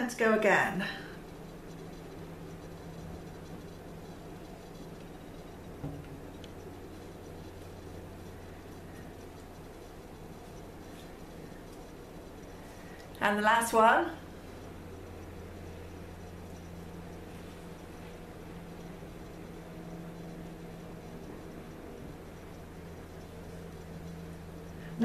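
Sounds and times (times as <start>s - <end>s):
steady low hum: 0.0s - 25.0s
light knock: 5.8s - 6.2s.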